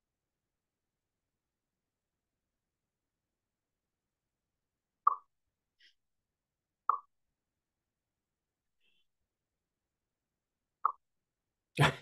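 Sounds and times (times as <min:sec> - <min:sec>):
plop-like clicks: 0:05.0 - 0:05.3, 0:06.9 - 0:07.1, 0:10.8 - 0:11.0.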